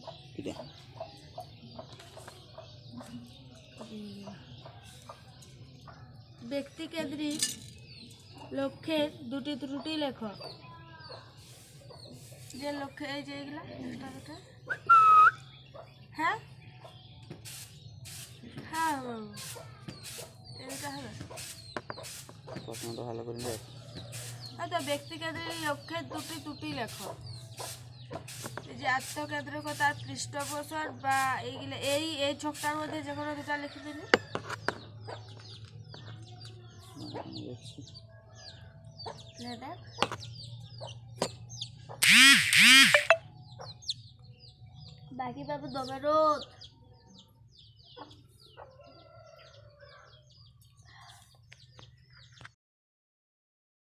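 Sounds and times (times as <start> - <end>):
parrot whistled screech: 14.7 - 15.4
parakeet harsh calls: 42.0 - 43.2.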